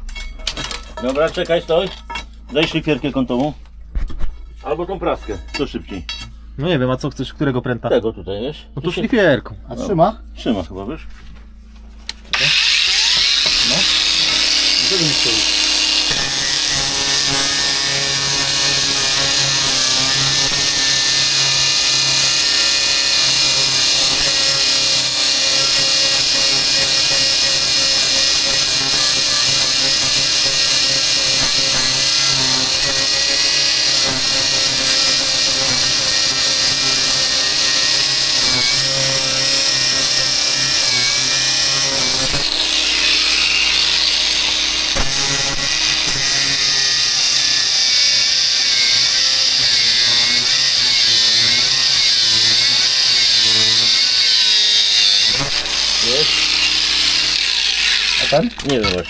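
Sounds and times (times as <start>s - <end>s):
angle grinder cutting steel: 12.1s - 59.0s.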